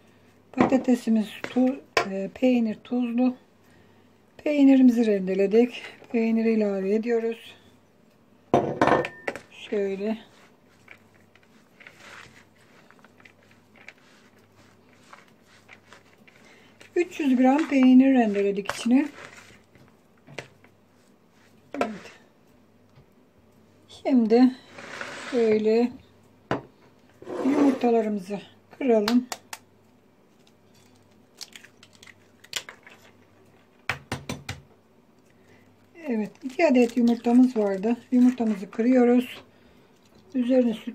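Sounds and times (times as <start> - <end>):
soft rustling of shreds: 9.5 - 22.6, 24.4 - 25.9
spoon scraping plastic bowl: 9.7 - 20.7, 21.4 - 22.2, 24.6 - 25.7, 27.1 - 28.0
eggs cracking against a bowl: 30.4 - 39.0.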